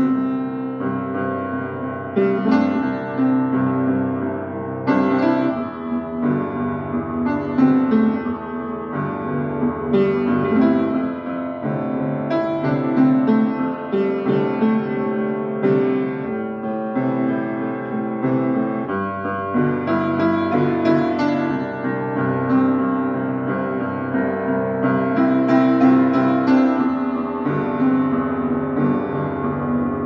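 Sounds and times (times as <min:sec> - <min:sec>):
piano playing sustained chords: 0:00.0 - 0:30.0.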